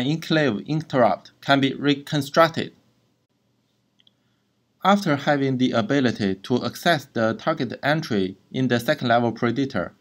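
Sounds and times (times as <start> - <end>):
man speaking: 0.0 - 2.8, 4.8 - 10.0.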